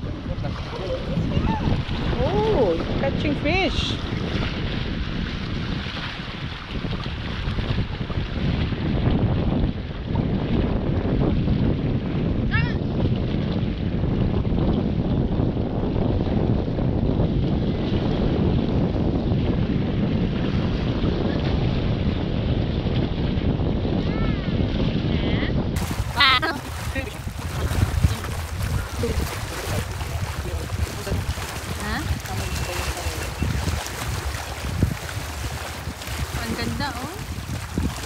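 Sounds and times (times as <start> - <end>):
sea washing against rocks: 0.0 - 9.2, 25.8 - 38.0
wind buffeting microphone: 0.0 - 38.0.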